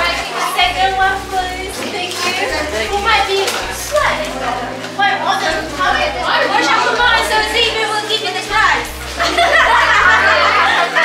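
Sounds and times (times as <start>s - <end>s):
children and adults chattering: 0.0s - 11.0s.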